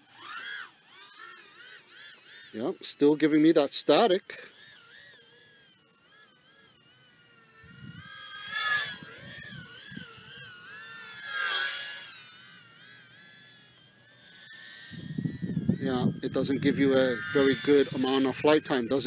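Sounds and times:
drone motors whining: 0.0s - 19.0s.

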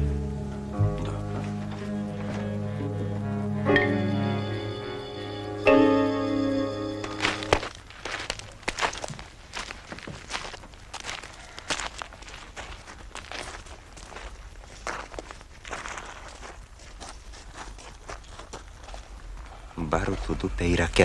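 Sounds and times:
music cue: 0.0s - 7.7s
footsteps crunching on gravel: 7.0s - 19.8s.

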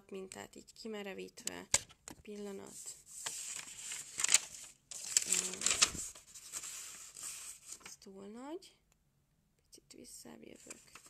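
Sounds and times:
paper rustling and crinkling: 2.6s - 8.0s, 10.6s - 11.0s.

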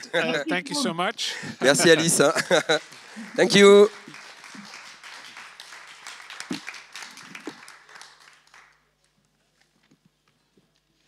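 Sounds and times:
audience applauding: 1.8s - 9.2s.

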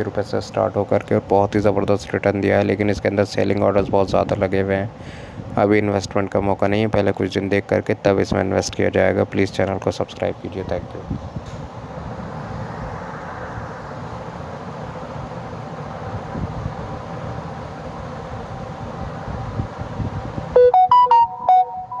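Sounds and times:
steady background noise: 0.0s - 22.0s
smartphone notification tone: 20.6s - 22.0s.

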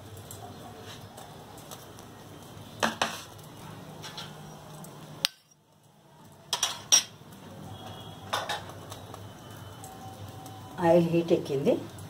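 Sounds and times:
metal kitchenware clinking: 6.5s - 7.2s, 8.3s - 8.7s.

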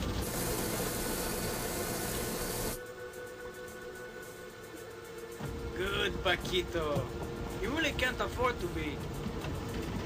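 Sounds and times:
water spraying in car wash: 0.0s - 2.8s
soft background music: 0.0s - 10.0s.

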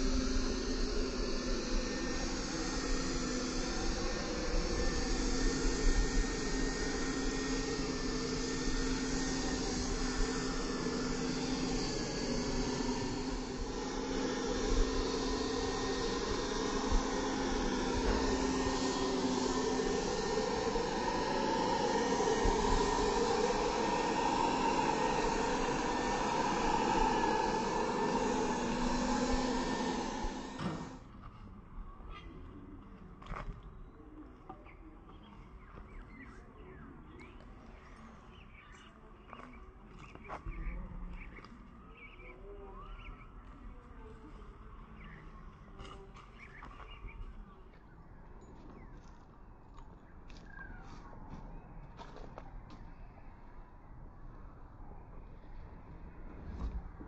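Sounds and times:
paint spray gun hissing: 0.0s - 31.0s
air compressor running: 0.0s - 31.2s
low hum: 0.0s - 57.0s.

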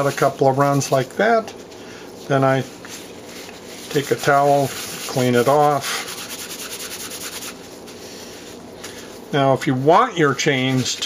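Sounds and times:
paper towel rustling: 0.0s - 11.0s
gloved hands rubbing metal chain: 2.8s - 8.2s.

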